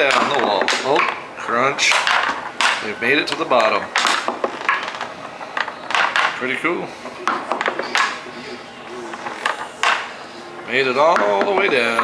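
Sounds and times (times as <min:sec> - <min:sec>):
wooden balls knocking on ramps: 0:00.0 - 0:01.2, 0:01.9 - 0:06.4, 0:07.2 - 0:08.2, 0:09.1 - 0:10.1, 0:11.0 - 0:12.0.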